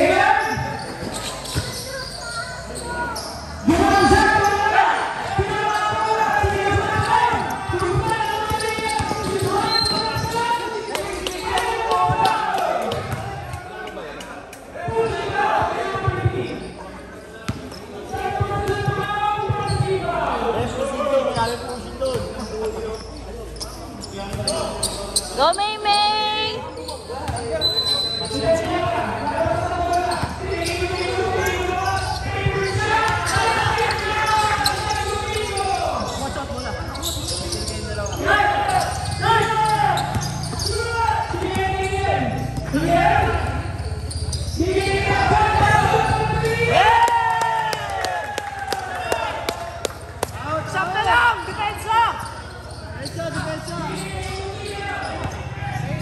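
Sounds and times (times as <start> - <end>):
people shouting and talking: 0.0 - 56.0
basketball bouncing on concrete: 6.3 - 10.4.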